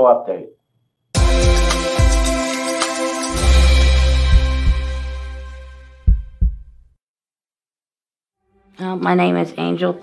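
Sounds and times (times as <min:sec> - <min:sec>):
logo sting music: 0:01.2 - 0:06.1
low heartbeat-like thumps: 0:04.0 - 0:05.2, 0:06.0 - 0:07.0.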